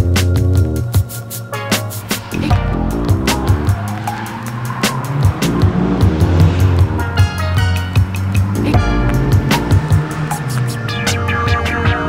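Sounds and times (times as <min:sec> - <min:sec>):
music with steady beat: 0:00.0 - 0:12.0
tyres squealing: 0:01.6 - 0:12.0.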